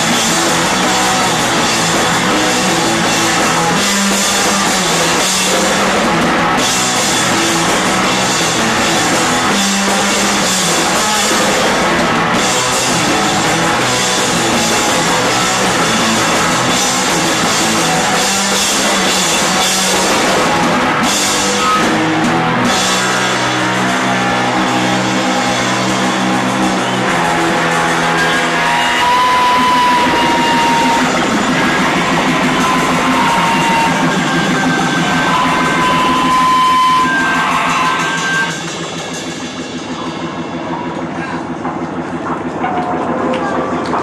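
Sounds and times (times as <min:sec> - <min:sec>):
held high guitar notes: 0:00.0 - 0:42.4
rock band playing live: 0:00.0 - 0:44.0
room noise: 0:00.0 - 0:44.0.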